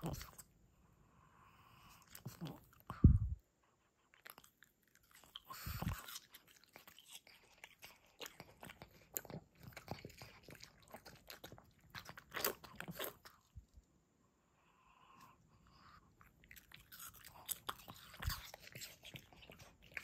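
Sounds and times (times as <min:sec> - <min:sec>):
dog chewing fruit: 0:00.0 - 0:00.5, 0:04.1 - 0:13.5, 0:15.8 - 0:20.0
dog licking lips: 0:04.0 - 0:13.5.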